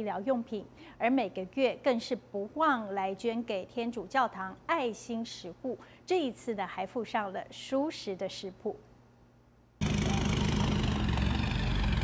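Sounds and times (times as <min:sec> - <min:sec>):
engine idling: 0:09.8 - 0:12.0.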